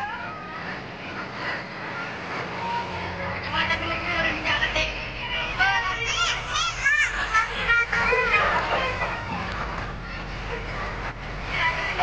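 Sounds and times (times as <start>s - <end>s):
children's audience crowd noise: 0.0s - 3.6s, 4.9s - 12.0s
children calling out: 6.0s - 10.3s.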